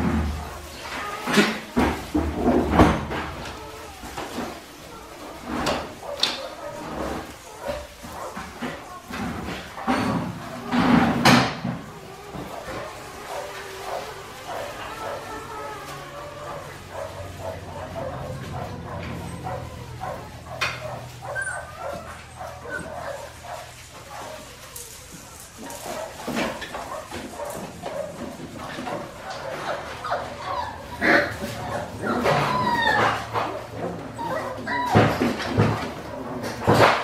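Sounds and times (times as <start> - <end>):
puppies yipping and whining: 0.0 - 37.0.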